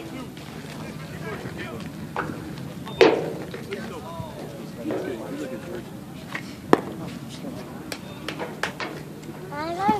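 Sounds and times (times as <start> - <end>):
chatter of voices: 0.0 - 9.9.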